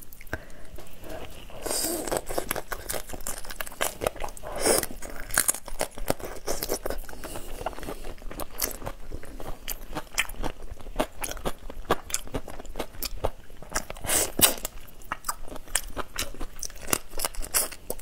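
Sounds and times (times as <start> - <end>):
crunching shrimp shells: 1.7 - 18.0.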